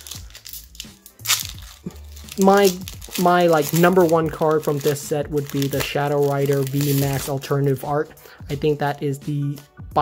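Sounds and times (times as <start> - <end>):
foil wrapper tearing and crinkling: 0.0 - 7.5.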